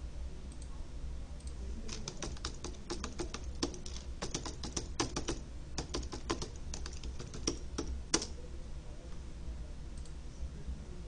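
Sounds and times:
computer keyboard typing: 0:01.8 - 0:08.4.

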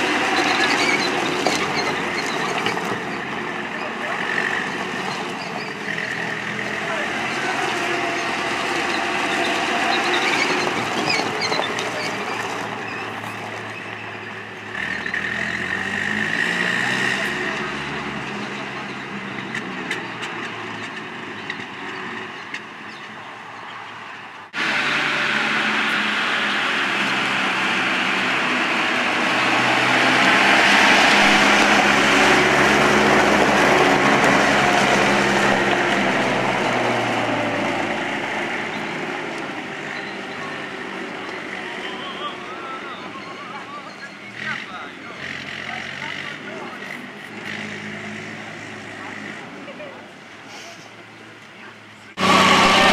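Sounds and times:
armoured car engine on gravel: 0:00.0 - 0:23.1.

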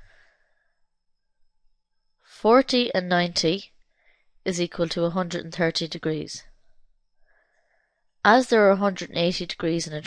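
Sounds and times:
faint breath: 0:00.0 - 0:01.0, 0:03.8 - 0:04.4, 0:06.6 - 0:08.2.

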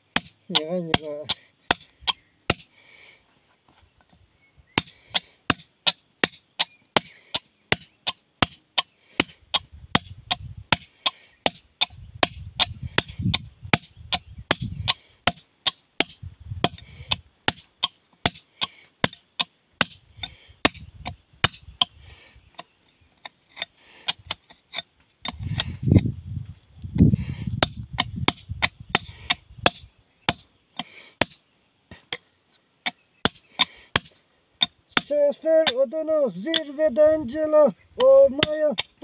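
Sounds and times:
hammer striking steel chisel on stone: 0:38.0 - 0:39.0.

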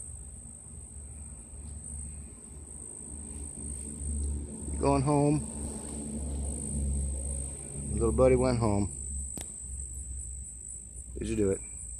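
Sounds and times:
insect trilling: 0:00.0 - 0:11.9
low background rumble: 0:00.0 - 0:11.9.

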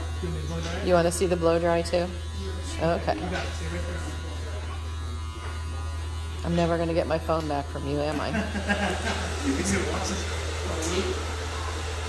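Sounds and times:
hair dryer buzzing: 0:00.0 - 0:12.0.

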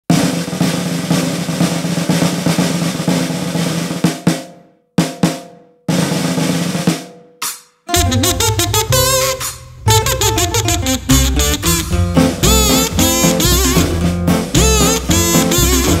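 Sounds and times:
snare drum rolls and strokes: 0:00.1 - 0:16.0.

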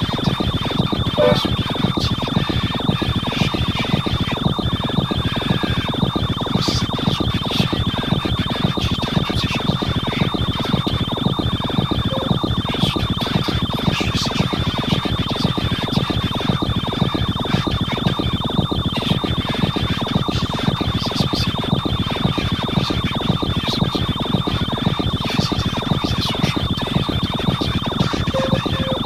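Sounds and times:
high-pitched whine: 0:00.0 - 0:29.0
pulsing electronic music: 0:00.0 - 0:29.0
electronic blip: 0:01.1 - 0:01.6, 0:12.0 - 0:12.5, 0:28.3 - 0:29.0.

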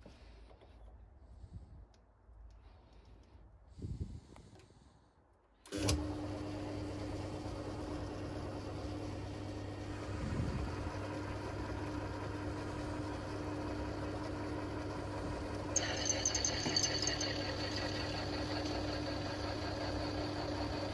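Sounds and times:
metal lathe motor humming: 0:07.4 - 0:20.9.

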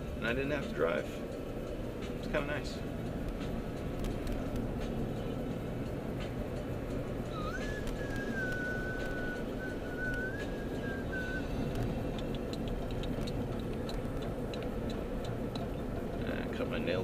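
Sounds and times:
car road and engine noise: 0:00.0 - 0:17.0
light ticks: 0:03.1 - 0:05.0, 0:11.6 - 0:16.3
thin high whistle: 0:07.3 - 0:11.7.

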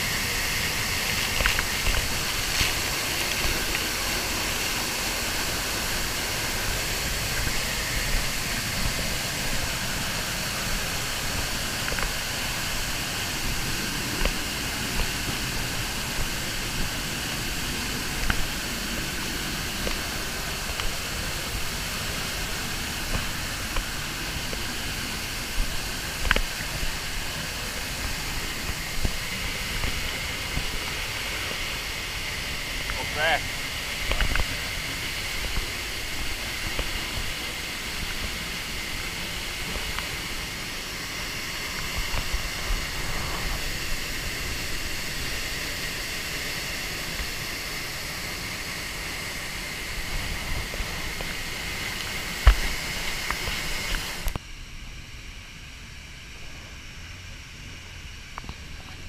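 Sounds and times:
waterfall rushing: 0:00.0 - 0:54.4.

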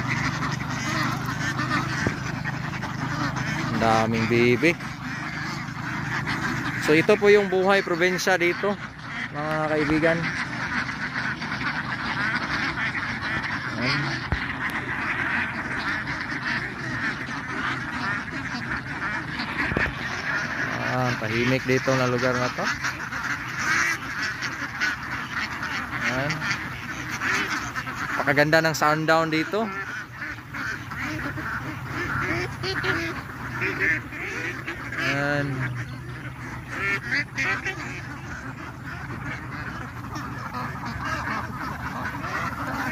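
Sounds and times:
ducks quacking: 0:00.0 - 0:42.9.

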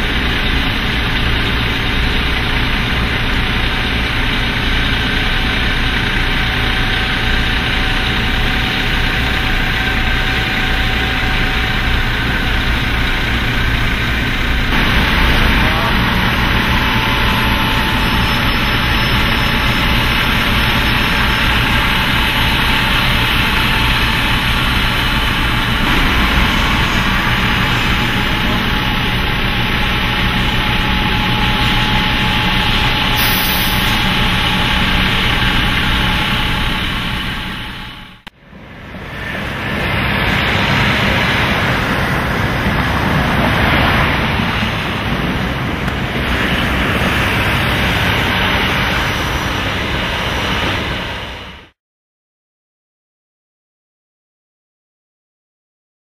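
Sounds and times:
diesel bus engine rumbling: 0:00.0 - 0:51.7.

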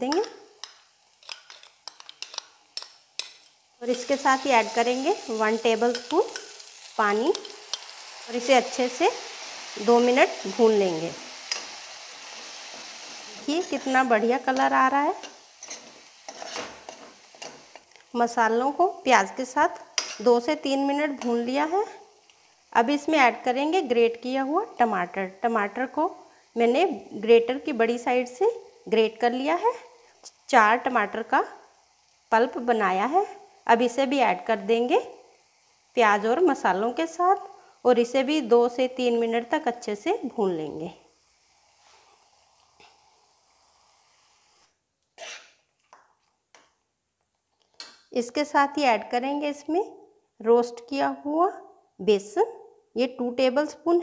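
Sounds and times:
faint sizzle: 0:00.0 - 0:46.9
faint steady hiss: 0:00.0 - 0:54.0
spoon scraping in a pan: 0:00.1 - 0:09.8, 0:11.2 - 0:17.9, 0:20.0 - 0:20.3, 0:41.4 - 0:45.7.

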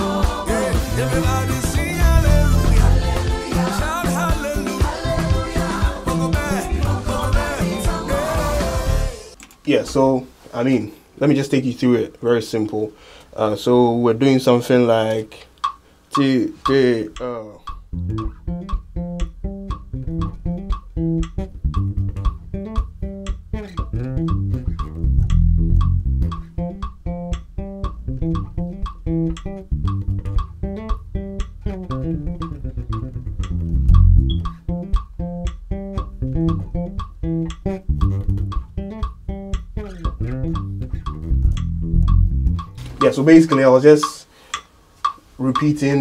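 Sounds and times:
electric bass guitar bassline: 0:00.0 - 0:09.4, 0:17.2 - 0:43.2
metronome clicks: 0:15.1 - 0:46.0.

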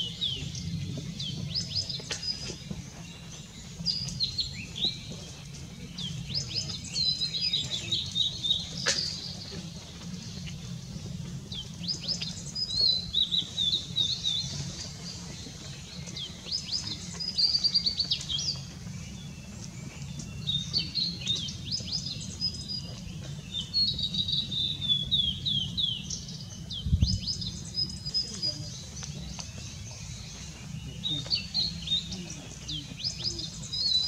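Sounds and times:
bird singing whistled notes: 0:15.9 - 0:34.0.

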